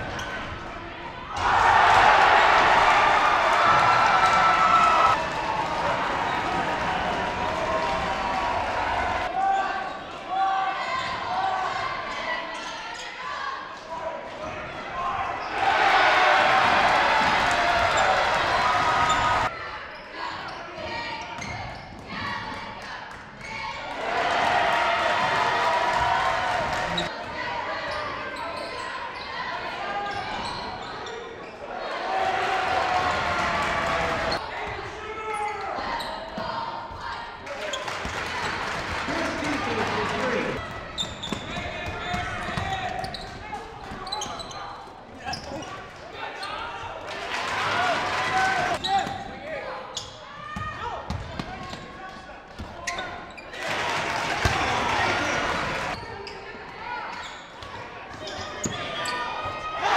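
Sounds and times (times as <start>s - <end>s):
voices in echoing hall: 0.0s - 59.9s
sneakers squeaking: 18.8s - 22.4s, 27.8s - 29.4s, 30.0s - 31.6s, 40.6s - 46.7s, 48.8s - 53.6s, 55.2s - 59.8s.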